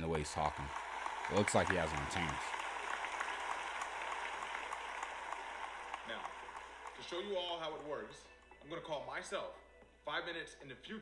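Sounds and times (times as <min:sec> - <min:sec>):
people applauding: 0:00.0 - 0:08.5.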